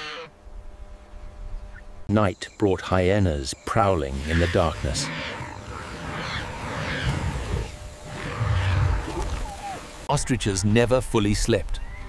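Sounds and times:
hyenas growling: 4.1s - 9.9s.

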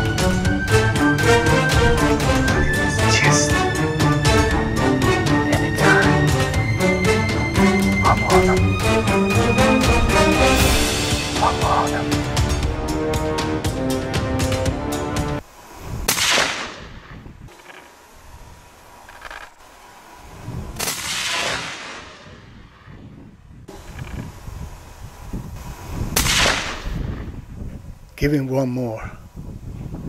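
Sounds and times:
background music: 0.0s - 15.4s.

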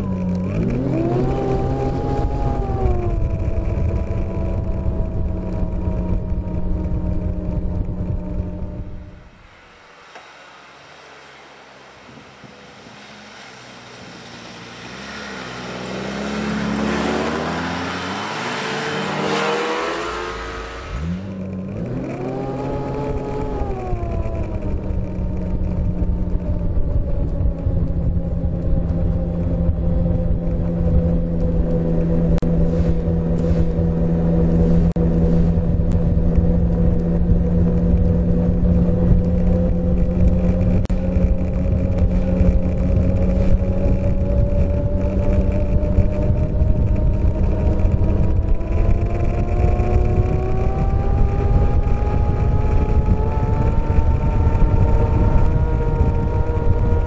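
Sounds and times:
snowmobile engine revving: 0.0s - 9.4s, 11.9s - 57.0s.

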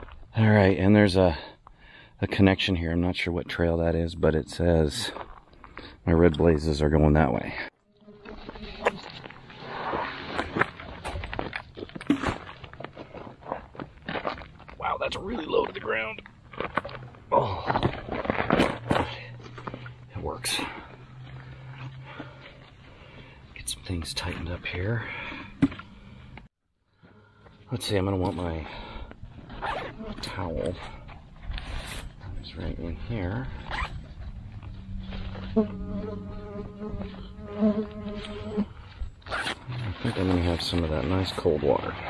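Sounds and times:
flying insect buzzing: 7.8s - 10.2s, 35.4s - 38.8s
backpack gear rustling: 29.2s - 30.2s
low hum: 30.2s - 40.1s
sharp scratch: 31.5s - 32.2s, 39.3s - 40.5s.

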